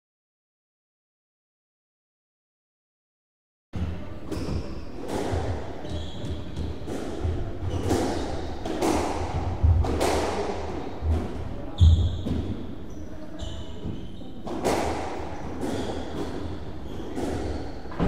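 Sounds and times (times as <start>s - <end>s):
squash ball hitting walls: 3.8s - 12.7s, 13.8s - 18.0s
sneakers squeaking on wooden floor: 4.3s - 9.8s, 10.8s - 14.5s, 15.1s - 18.0s.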